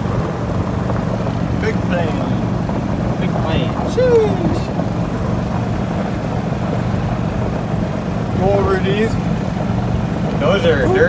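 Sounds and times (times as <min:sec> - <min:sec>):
golf cart engine running: 0:00.0 - 0:11.0.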